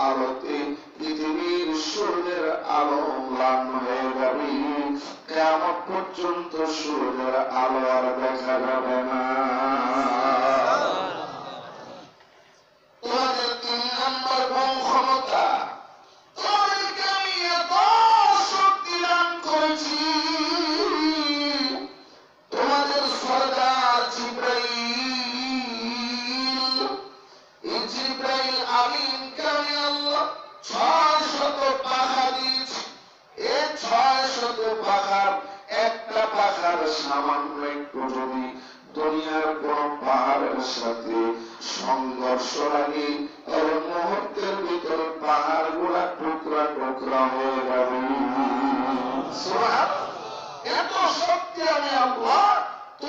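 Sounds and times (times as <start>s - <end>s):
man chanting into a microphone: 0.0s - 11.0s, 13.0s - 53.0s.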